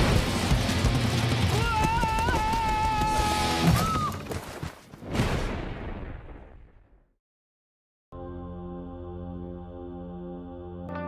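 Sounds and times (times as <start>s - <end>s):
trailer music: 8.2s - 11.0s.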